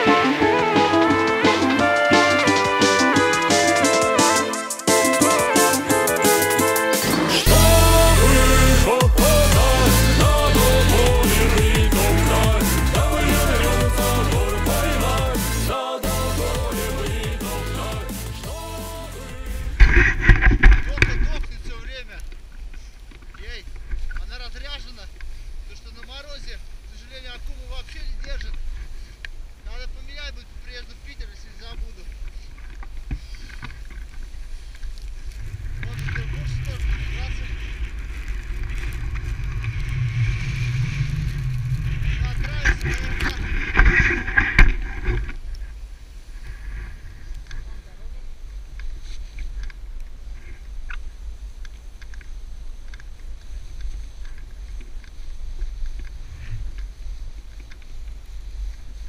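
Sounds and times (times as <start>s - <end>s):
faint crackles of snow: 19.5s - 59.0s
skis running over snow: 30.4s - 45.7s
wind buffeting microphone: 35.0s - 48.0s.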